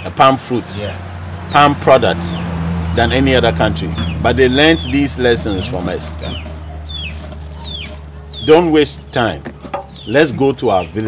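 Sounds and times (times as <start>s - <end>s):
chickens calling: 0.0s - 11.0s.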